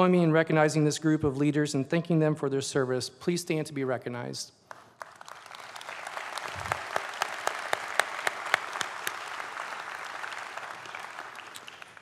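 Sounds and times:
audience applauding: 4.7s - 12.0s.

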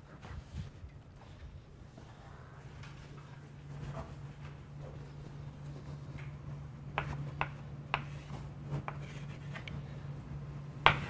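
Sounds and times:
chalk writing on chalkboard: 7.0s - 9.7s.

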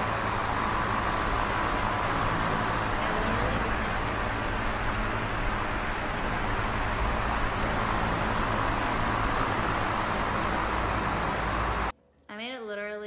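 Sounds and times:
steady rushing noise with rumble: 0.0s - 11.9s.

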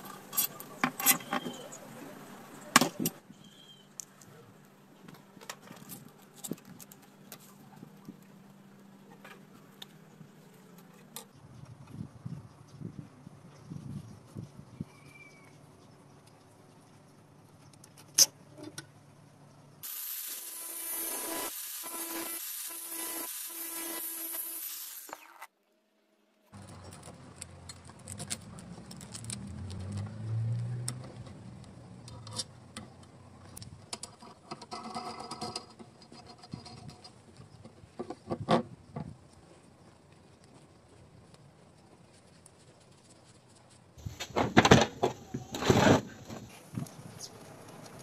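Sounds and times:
steel nuts and washers clinking: 0.0s - 1.7s
steady hiss: 19.8s - 25.4s.

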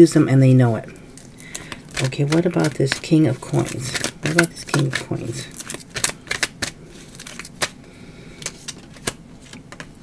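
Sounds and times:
cards shuffled and snapping: 1.4s - 7.8s, 8.4s - 9.9s.

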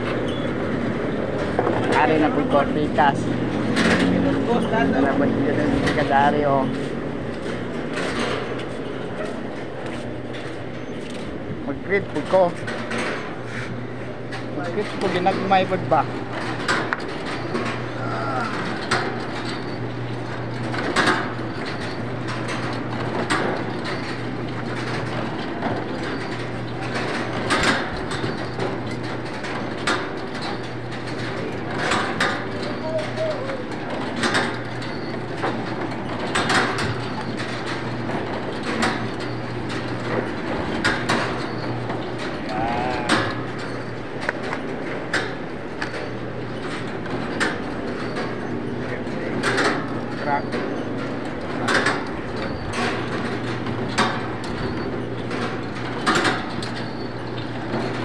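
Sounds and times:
loud mechanical clack: 0.0s - 13.5s, 14.2s - 58.0s
egg grading machine humming: 0.0s - 58.0s.

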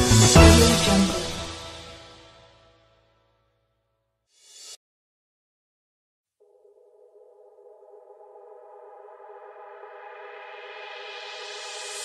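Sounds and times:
held synthesizer chord: 0.0s - 2.5s.

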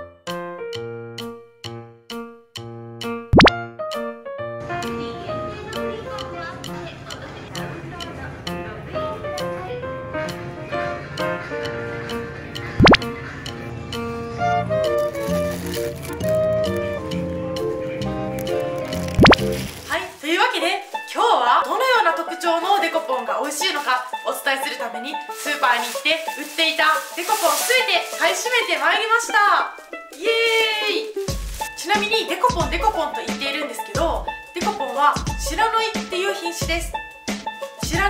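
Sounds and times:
bouncy keyboard music: 0.0s - 19.8s, 20.9s - 38.0s
cartoon bloop sound effect: 3.4s - 3.6s, 12.8s - 13.1s, 19.2s - 19.5s.

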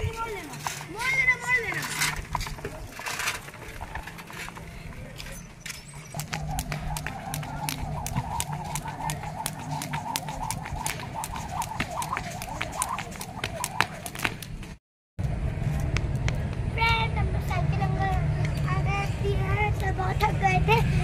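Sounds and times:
child's voice: 0.0s - 2.1s, 16.7s - 21.0s
steady low rumble: 6.0s - 20.6s
skipping rope slapping paving: 6.1s - 14.8s.

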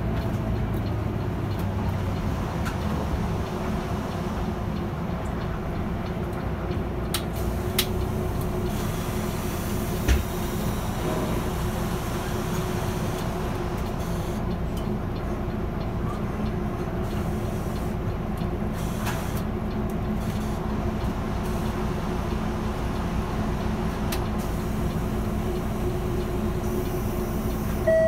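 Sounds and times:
bus engine and road noise drone: 0.0s - 28.0s.

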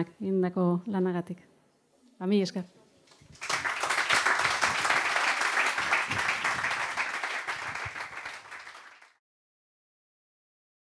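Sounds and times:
audience applauding: 3.2s - 9.2s.

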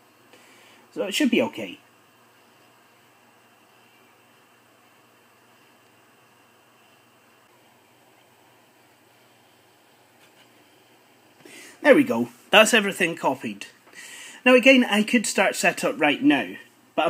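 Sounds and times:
faint room tone hiss: 0.0s - 17.0s.

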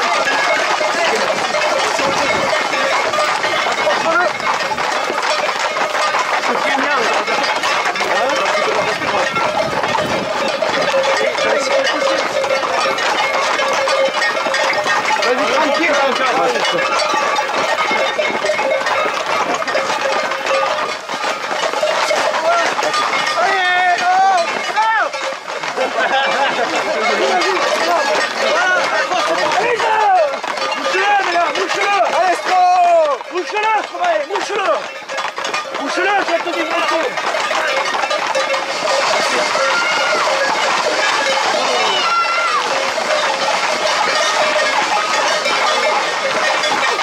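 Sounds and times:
crowd shouting: 0.0s - 4.3s, 25.8s - 34.7s, 38.7s - 46.2s
long wavering shout: 41.8s - 42.7s.

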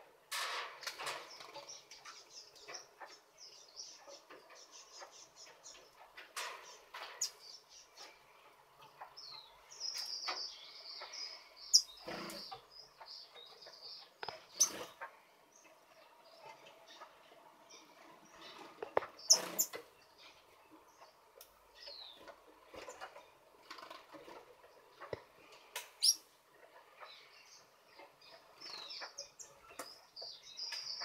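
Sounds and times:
finches chirping: 6.6s - 22.4s, 25.9s - 26.3s, 26.9s - 31.0s.

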